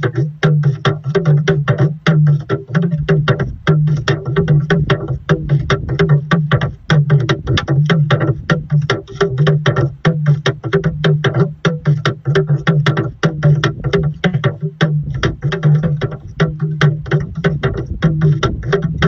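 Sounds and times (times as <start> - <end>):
talking drum struck with stick: 0.0 - 19.0.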